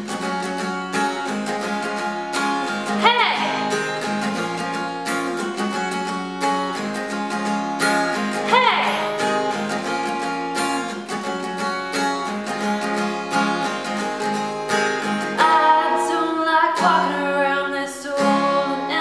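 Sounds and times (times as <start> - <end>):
acoustic guitar strumming chords: 0.0 - 19.0.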